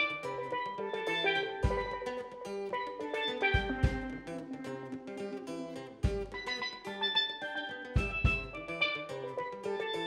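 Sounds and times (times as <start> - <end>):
steel pan melody: 0.0 - 10.0
kick drum hit: 1.6 - 2.0, 3.6 - 4.2, 6.0 - 6.4, 8.0 - 8.6
live band playing: 3.5 - 5.0, 8.0 - 8.7.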